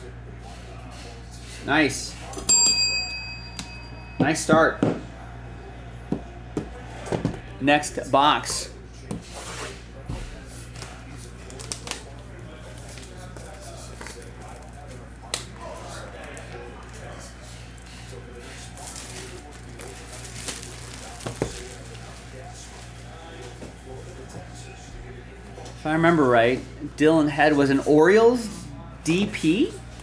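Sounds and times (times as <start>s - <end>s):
quiet background music: 0.0s - 30.0s
cardboard and packaging rustling: 18.7s - 23.5s.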